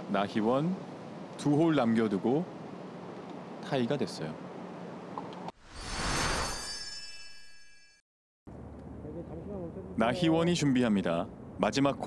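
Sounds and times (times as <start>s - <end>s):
whoosh: 5.6s - 7.5s
bright shimmering ringing chord: 5.8s - 8.0s.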